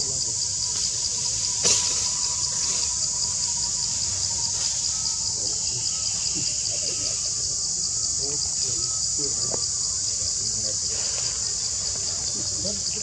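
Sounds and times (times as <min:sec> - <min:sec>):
high-pitched insect chorus: 0:00.0 - 0:13.0.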